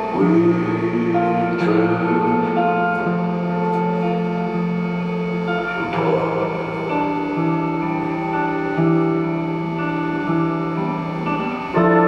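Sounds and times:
live band playing chords: 0:00.0 - 0:12.0.

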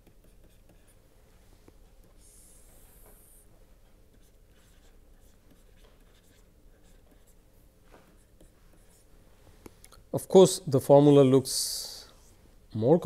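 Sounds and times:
stylus tapping and scratching on tablet: 0:00.0 - 0:09.8.

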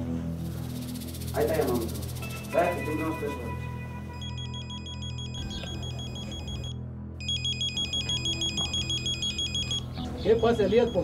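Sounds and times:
phone ringtone warbling trill: 0:04.1 - 0:11.0.

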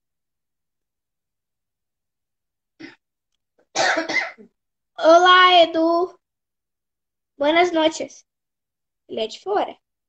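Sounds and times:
person coughing: 0:02.8 - 0:03.0, 0:03.7 - 0:04.6.

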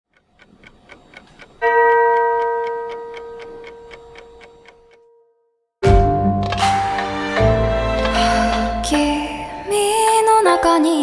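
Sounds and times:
clock ticking: 0:00.1 - 0:05.2.

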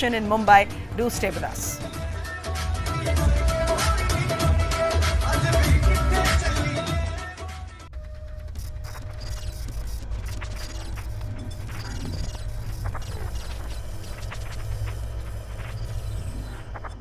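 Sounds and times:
low rumble: 0:00.0 - 0:04.1
mechanical clicks and ticks: 0:08.5 - 0:17.0.

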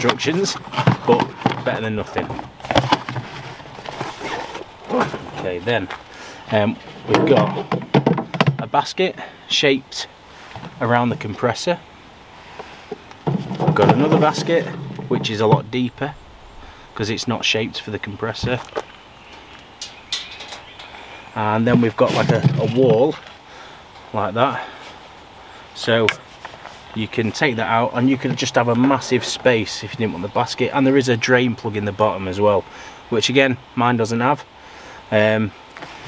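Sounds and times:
cardboard box rustling and scraping: 0:00.0 - 0:05.6, 0:13.3 - 0:15.6, 0:21.7 - 0:22.9
wire basket clinking: 0:19.8 - 0:21.2.

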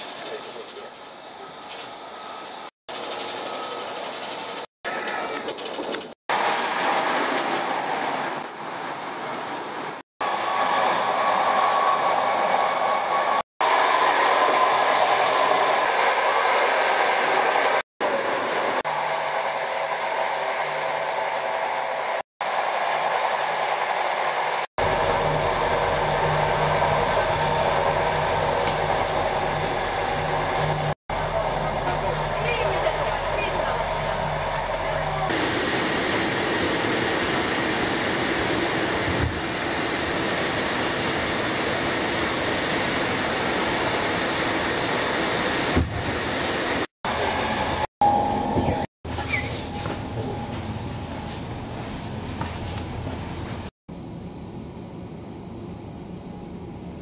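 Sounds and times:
train rumbling inside carriage: 0:24.4 - 0:47.8.

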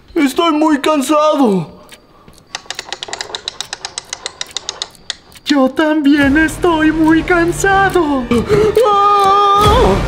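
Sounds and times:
rapid dry clicking: 0:01.8 - 0:09.6.

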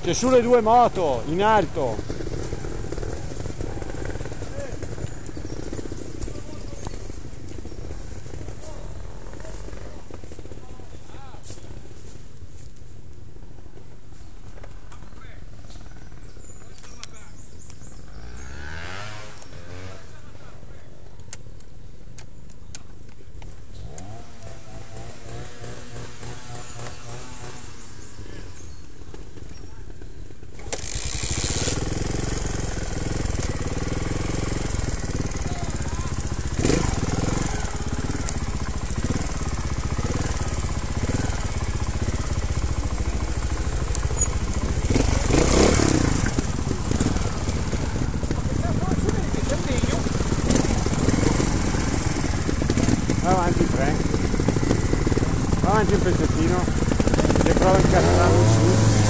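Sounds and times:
motorcycle engine revving: 0:00.0 - 0:11.0, 0:17.4 - 0:20.5, 0:23.7 - 0:59.0.

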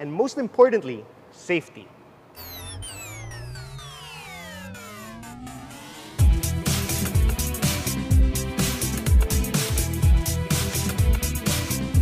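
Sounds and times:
low rising tone: 0:02.4 - 0:07.4
synthesized downward sweep: 0:02.4 - 0:07.6.

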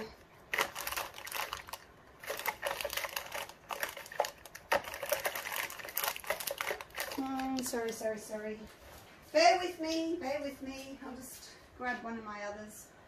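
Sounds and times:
plastic bottles clicking and rattling: 0:00.5 - 0:08.0.

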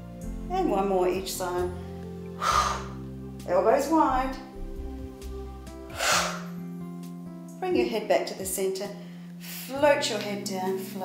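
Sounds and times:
background music: 0:00.0 - 0:11.0
woman exhaling forcefully: 0:02.4 - 0:03.0, 0:05.9 - 0:06.5.

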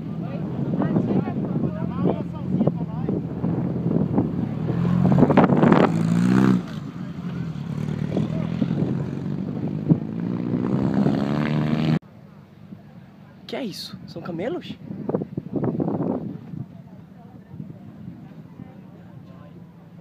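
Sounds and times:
buggy engine accelerating: 0:01.6 - 0:12.0.

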